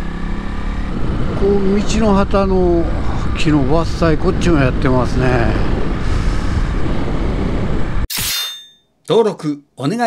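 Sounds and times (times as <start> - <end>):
motorcycle engine riding: 0.0 - 8.1
wind rushing over microphone: 0.3 - 8.1.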